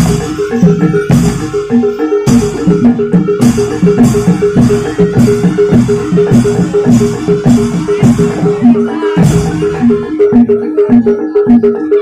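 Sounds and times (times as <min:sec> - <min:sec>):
hand drum beats: 0:00.0 - 0:12.0
struck metal-keyed notes: 0:00.0 - 0:12.0.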